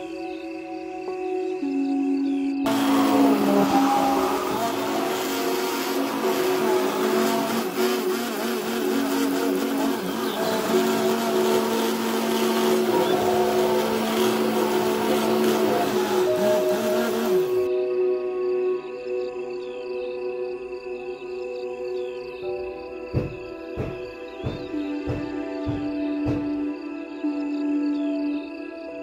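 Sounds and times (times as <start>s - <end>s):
soft background music: 0.0s - 29.0s
immersion blender motor running: 2.7s - 17.7s.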